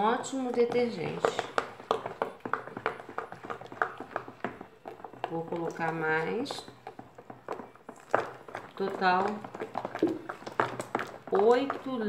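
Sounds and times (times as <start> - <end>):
utensil stirring in plastic basin: 0.0 - 12.0.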